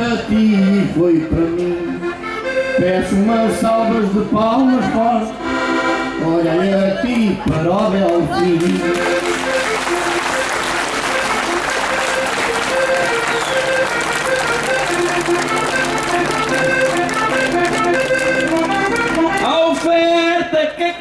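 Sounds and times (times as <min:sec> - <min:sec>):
accordion playing: 0:00.0 - 0:20.8
crowd applauding: 0:07.8 - 0:20.0.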